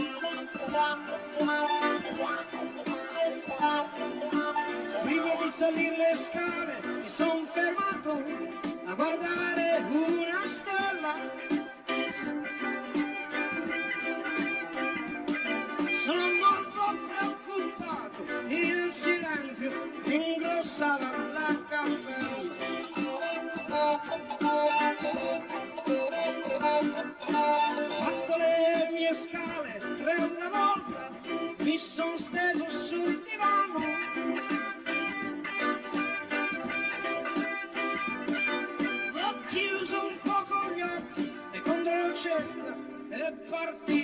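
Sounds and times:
guitar: 0:00.0 - 0:44.0.

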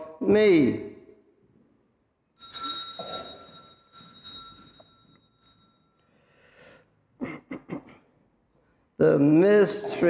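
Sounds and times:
altar bells ringing: 0:02.4 - 0:06.4.

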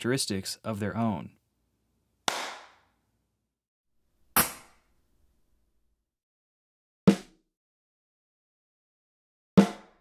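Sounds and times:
hand clap with room reverb: 0:02.3 - 0:02.9.

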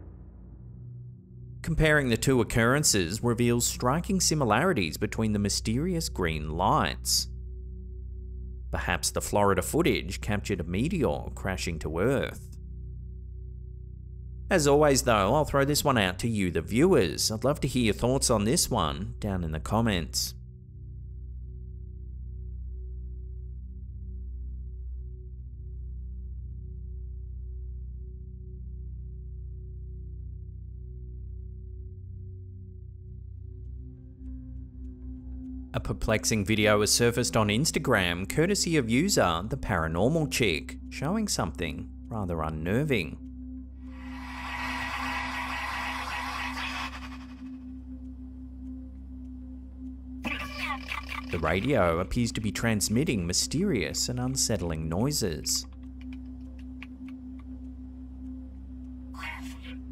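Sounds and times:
background music drone: 0:00.0 - 0:59.9.

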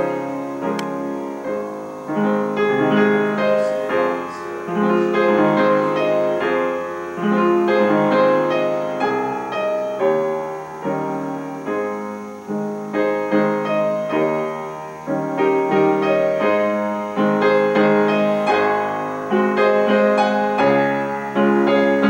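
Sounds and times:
upright piano playing: 0:00.0 - 0:22.0.

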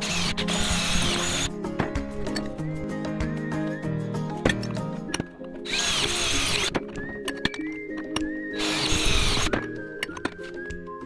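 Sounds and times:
power tool running: 0:00.0 - 0:01.5, 0:05.7 - 0:06.7, 0:08.6 - 0:09.5
melodic background music: 0:00.0 - 0:11.0.

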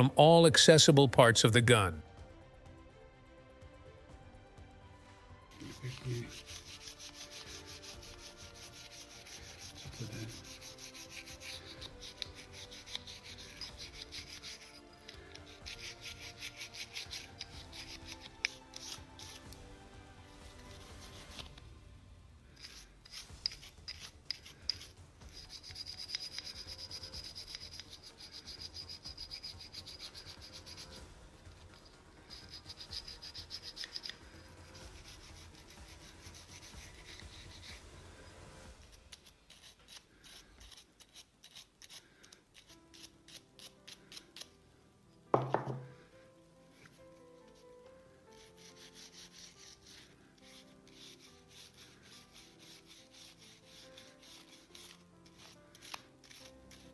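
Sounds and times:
toothbrush scrubbing metal: 0:05.5 - 0:21.8, 0:22.4 - 0:44.6, 0:46.7 - 0:56.9.

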